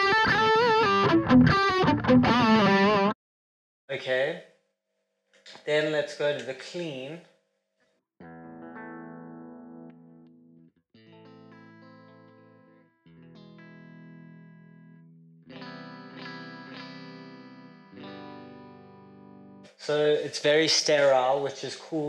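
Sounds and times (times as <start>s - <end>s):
clean electric guitar chords ringing: 0.0s - 3.2s, 8.2s - 19.6s.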